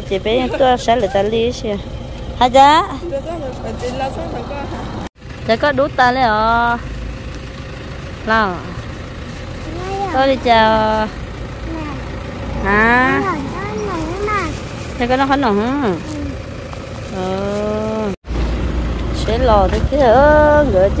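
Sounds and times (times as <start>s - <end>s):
steady low rumble: 0.1s - 21.0s
high-pitched voices speaking: 9.6s - 16.4s.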